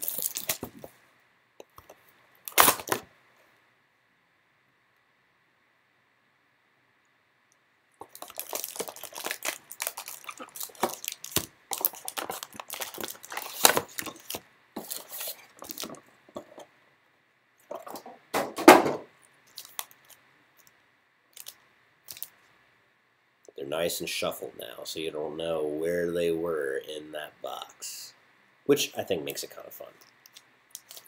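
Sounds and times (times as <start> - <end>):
foil wrappers crinkling: 0.0 - 0.9, 2.4 - 3.1, 8.0 - 16.6, 19.4 - 20.7, 21.3 - 22.4, 30.2 - 31.0.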